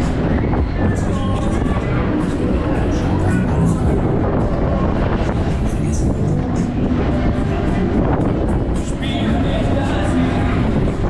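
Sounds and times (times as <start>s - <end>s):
fairground ride music: 0.0s - 11.0s
low rumble of moving ride: 0.0s - 11.0s.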